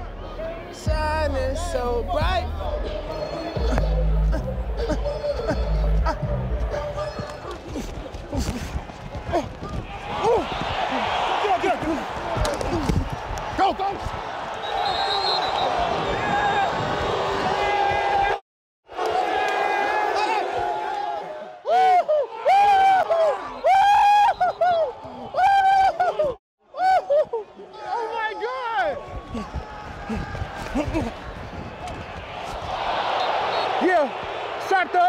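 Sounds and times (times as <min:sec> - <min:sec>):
stadium crowd noise: 0:00.0 - 0:35.0
players yelling and whooping: 0:09.3 - 0:18.4, 0:19.0 - 0:35.0.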